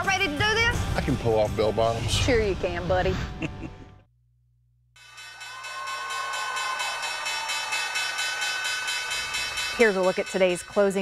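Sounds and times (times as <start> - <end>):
crowd cheering and clapping: 5.1 - 9.8.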